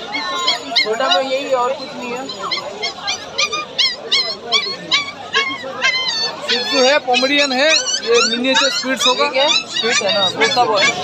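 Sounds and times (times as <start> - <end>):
puppies yipping and whimpering: 0.0 - 11.0.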